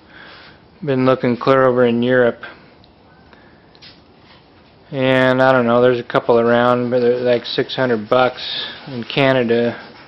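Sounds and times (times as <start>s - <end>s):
man's voice: 4.9s - 9.9s.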